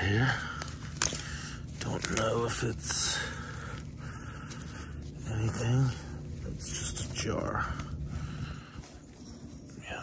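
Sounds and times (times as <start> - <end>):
hand scraping in dry debris: 0.0 - 10.0
steady background hiss: 0.0 - 10.0.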